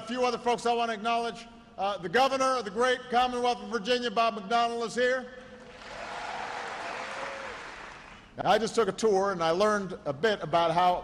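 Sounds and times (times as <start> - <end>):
audience applauding: 5.6 - 8.3.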